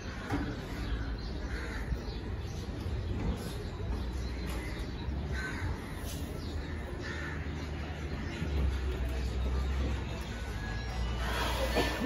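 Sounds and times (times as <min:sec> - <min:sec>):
crows cawing: 0:00.0 - 0:02.2.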